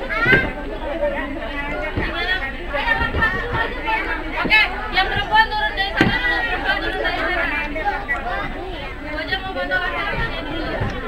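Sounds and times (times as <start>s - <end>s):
young children chattering: 0.0s - 11.0s.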